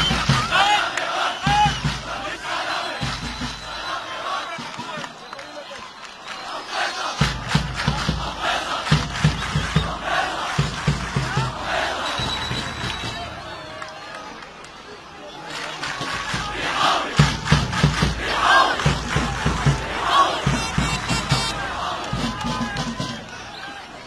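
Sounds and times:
crowd chanting and shouting: 0.0s - 24.0s.

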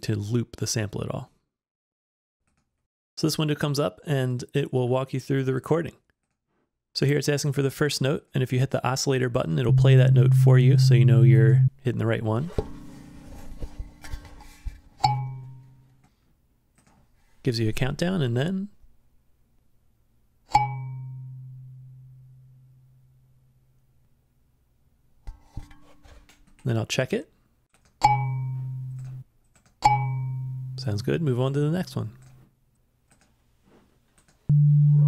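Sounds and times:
kalimba tine plucked: 9.7s - 11.7s
steady sine-wave tone: 9.7s - 11.8s, 34.5s - 35.0s.

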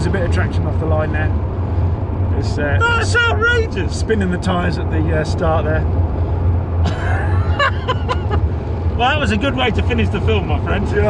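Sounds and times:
road and tyre rumble: 0.0s - 11.0s
men laughing and chatting: 6.6s - 11.0s.

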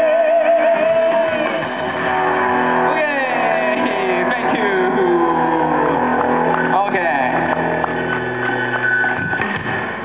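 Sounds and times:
amplified droning band notes: 0.0s - 10.0s.

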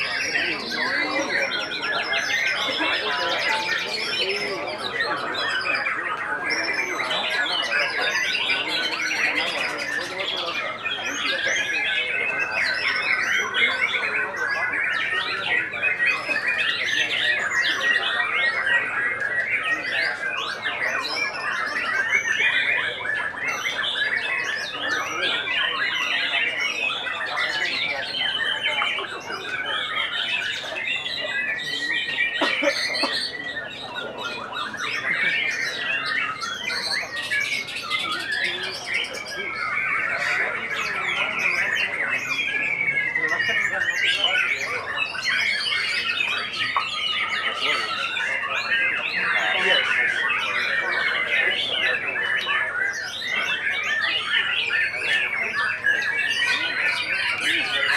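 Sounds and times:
songbirds singing: 0.0s - 57.9s.

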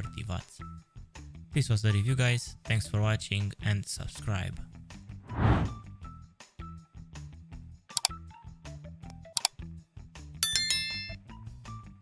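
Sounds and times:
bright bell ding: 10.4s - 11.2s.

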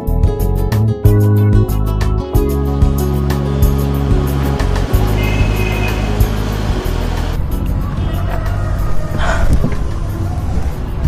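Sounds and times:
film music with low chords: 0.0s - 11.0s
car engine running: 2.5s - 7.4s.

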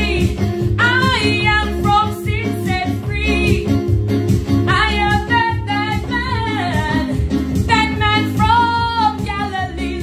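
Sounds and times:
woman singing gospel: 0.0s - 3.7s, 4.7s - 10.0s
electronic keyboard chords: 0.0s - 10.0s.

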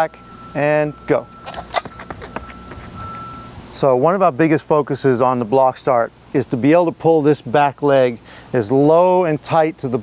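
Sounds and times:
running footfalls on track: 1.5s - 3.0s.

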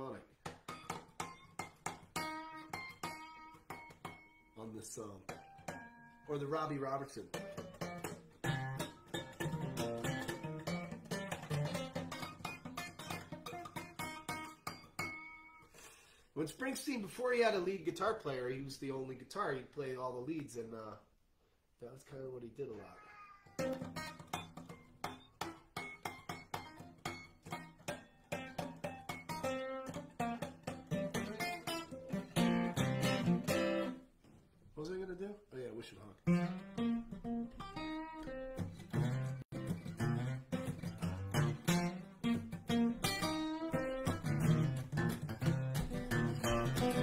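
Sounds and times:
acoustic guitar strumming: 0.6s - 15.8s, 23.6s - 34.0s, 36.2s - 47.0s.

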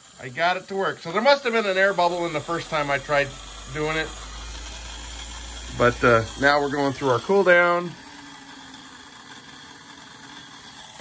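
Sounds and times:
jet turbine whirring: 0.0s - 11.0s.

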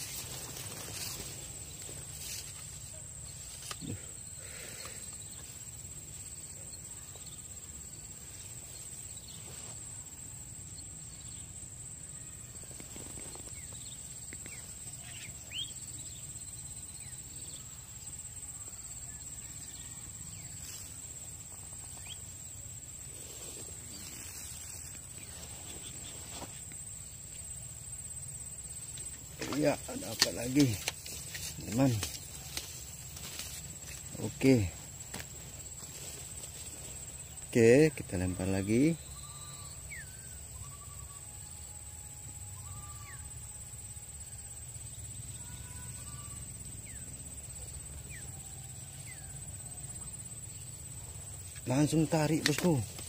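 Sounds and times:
insects droning: 0.0s - 53.0s.

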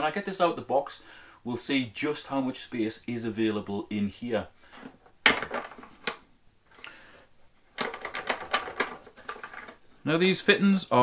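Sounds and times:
hard plastic clicking: 7.8s - 9.8s.

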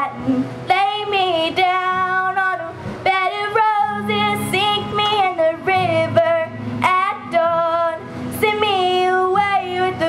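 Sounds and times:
acoustic guitar: 0.0s - 10.0s
girl singing country song: 0.0s - 10.0s.

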